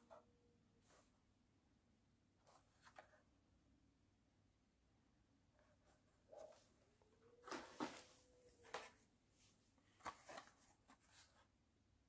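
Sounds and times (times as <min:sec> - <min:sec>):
plastic and card crinkling: 0:07.4 - 0:09.0, 0:09.9 - 0:11.4.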